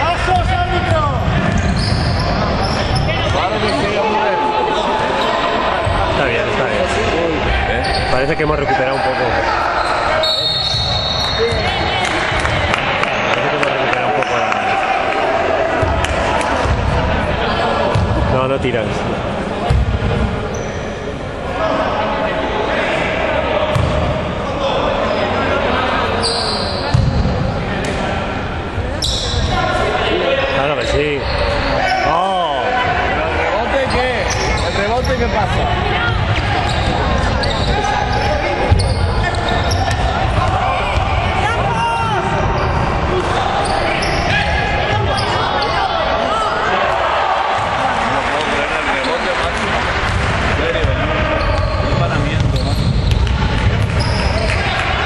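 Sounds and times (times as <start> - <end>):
voices echoing in a hall: 0.0 - 55.0.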